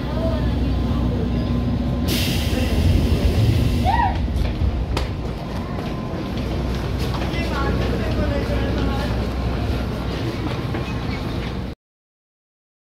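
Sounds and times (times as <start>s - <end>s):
passengers' voices: 0.0s - 11.8s
train low hum: 0.0s - 11.8s.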